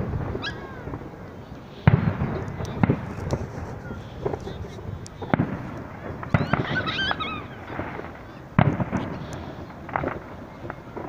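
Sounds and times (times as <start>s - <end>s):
fireworks bursting with sharp bangs: 0.0s - 11.0s.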